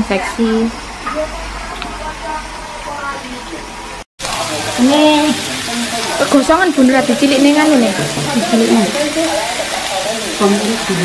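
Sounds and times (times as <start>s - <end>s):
food cooking on stove: 0.0s - 11.0s
food sizzling on grill plate: 0.0s - 11.0s
faint voices: 1.0s - 11.0s.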